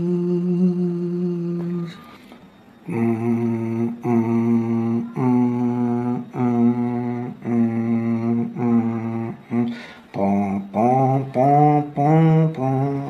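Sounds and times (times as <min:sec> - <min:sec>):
man singing low notes: 0:00.0 - 0:02.2, 0:02.8 - 0:13.0
short breaths: 0:09.7 - 0:10.1.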